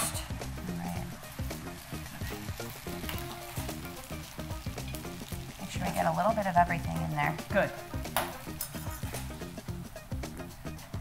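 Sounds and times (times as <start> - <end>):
soft background music: 0.0 - 11.0
crackling hiss: 0.4 - 7.2.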